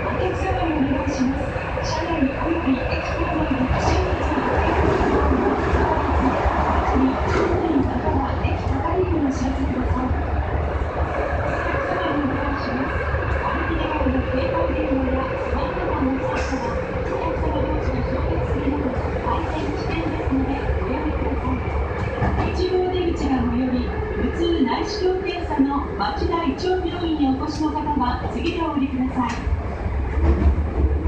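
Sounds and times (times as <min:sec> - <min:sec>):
train wheels rumbling in tunnel: 0:00.0 - 0:31.0.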